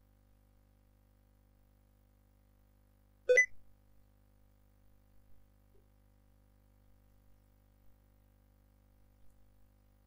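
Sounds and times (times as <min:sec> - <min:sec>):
short system beep: 0:03.3 - 0:03.5.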